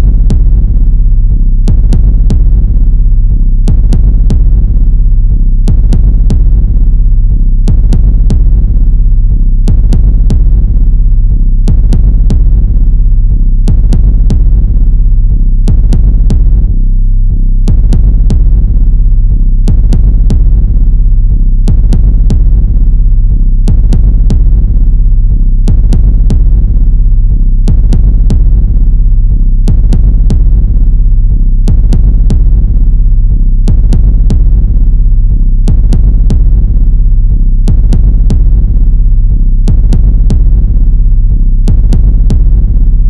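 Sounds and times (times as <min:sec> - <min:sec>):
droning low synth: 0:00.0 - 0:43.0.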